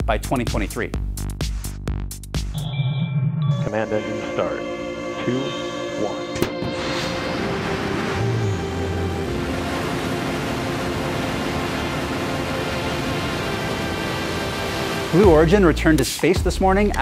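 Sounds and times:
sustained background music: 3.5s - 17.0s
rocket engine rushing: 6.7s - 15.7s.

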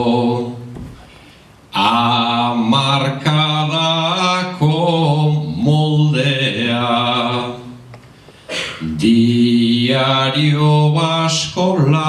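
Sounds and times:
man singing unaccompanied: 0.0s - 0.8s, 1.8s - 7.8s, 8.8s - 12.0s.

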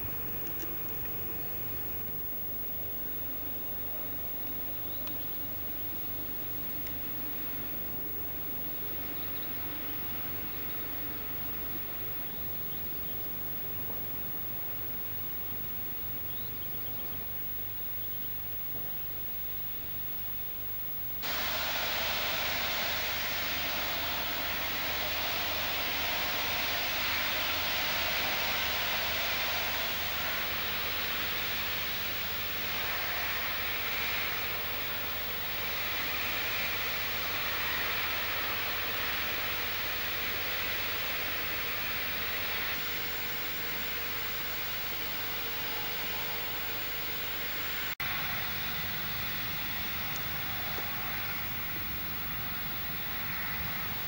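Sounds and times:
faint low hum: 0.0s - 54.0s
high-pressure jet hissing: 21.2s - 54.0s.

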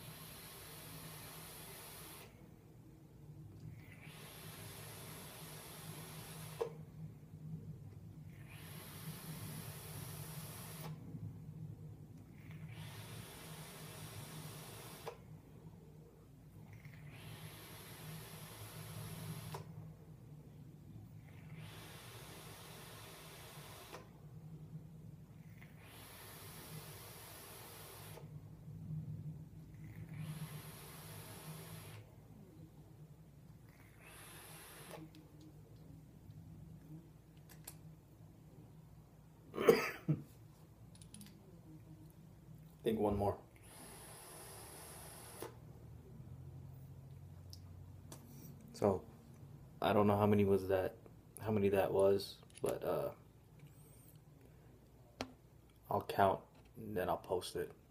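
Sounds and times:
faint low hum: 0.0s - 57.9s
e-cigarette coil hissing: 4.0s - 6.7s, 8.4s - 11.0s, 12.6s - 15.2s, 17.0s - 19.7s, 21.4s - 24.1s, 25.7s - 28.2s, 30.0s - 32.0s, 33.9s - 35.1s, 43.6s - 45.6s
e-cigarette hissing: 43.7s - 45.6s.

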